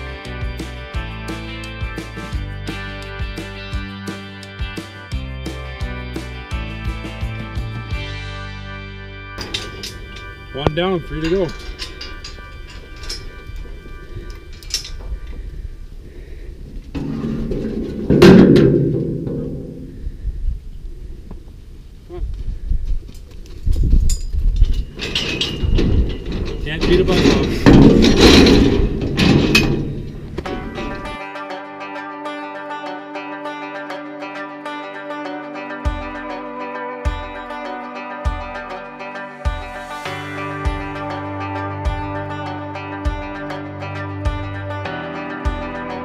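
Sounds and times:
music: 0.0s - 15.6s, 30.4s - 46.0s
steel gates clanking and banging: 9.4s - 15.4s, 16.6s - 20.1s, 24.1s - 31.2s.

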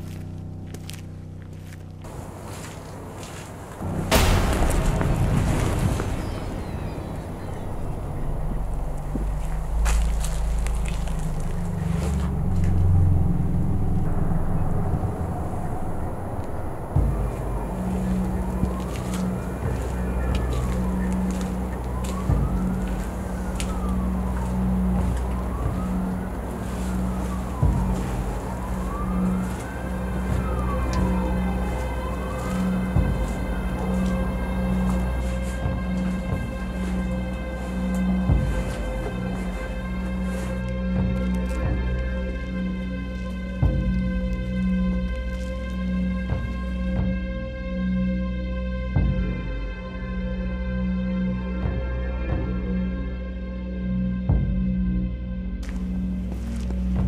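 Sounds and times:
heavy low drone: 0.0s - 57.0s
siren wailing: 2.1s - 48.2s.

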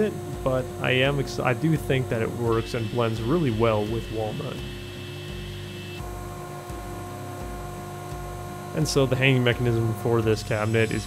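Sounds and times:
table saw motor hum and whine: 0.0s - 11.0s.

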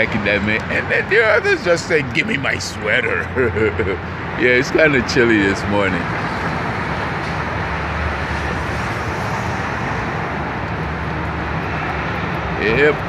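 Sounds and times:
city street traffic: 0.0s - 13.0s.

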